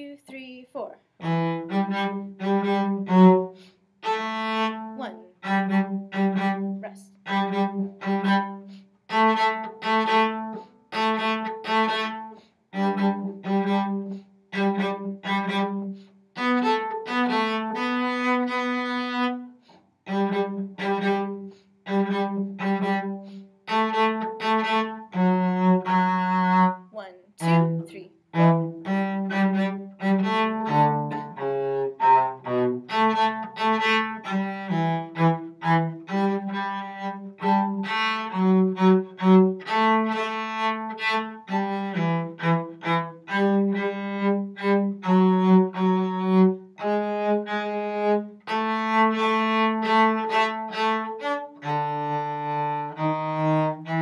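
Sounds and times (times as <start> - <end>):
solo cello bowed notes: 0.8 - 54.0.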